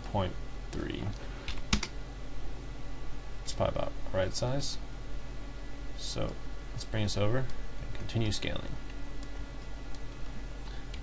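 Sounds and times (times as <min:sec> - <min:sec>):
computer keyboard keystrokes: 0:01.5 - 0:01.9.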